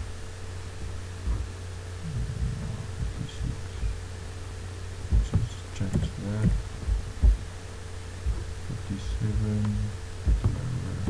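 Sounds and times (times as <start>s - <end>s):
dull low thumps: 0.0s - 11.0s
low electrical hum: 0.0s - 11.0s.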